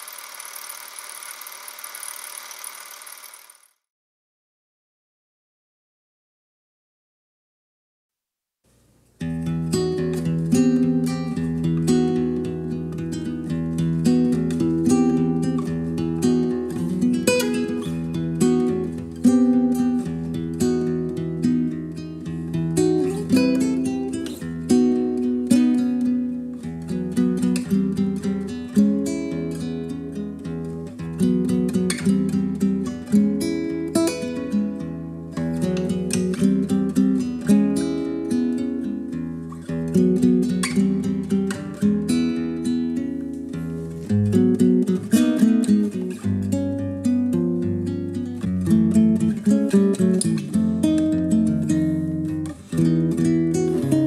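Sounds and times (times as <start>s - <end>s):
acoustic guitar picked and strummed: 8.7s - 54.0s.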